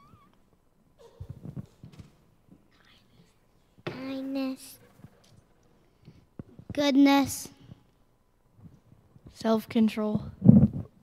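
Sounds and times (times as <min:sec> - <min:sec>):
people whispering: 0:02.7 - 0:03.7.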